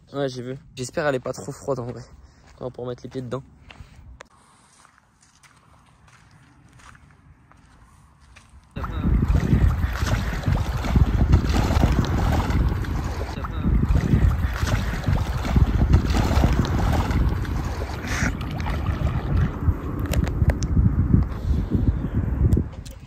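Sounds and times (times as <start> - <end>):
wind buffeting microphone: 8.7 - 23.0.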